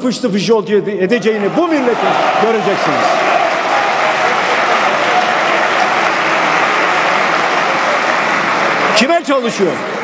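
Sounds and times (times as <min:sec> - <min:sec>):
crowd applauding: 0:01.4 - 0:10.0.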